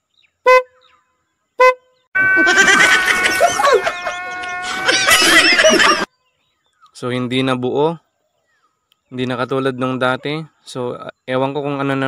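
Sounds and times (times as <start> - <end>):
scooter horn beep: 0.5 - 0.8, 1.6 - 6.1
steady held tone: 2.2 - 6.1
young men laughing loudly: 2.2 - 6.1.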